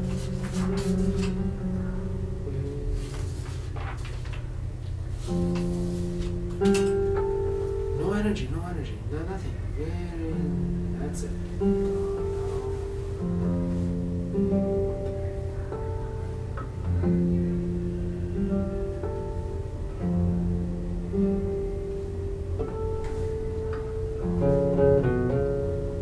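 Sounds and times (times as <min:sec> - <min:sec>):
classical guitars playing: 0:00.0 - 0:03.1, 0:05.3 - 0:08.2, 0:09.9 - 0:26.0.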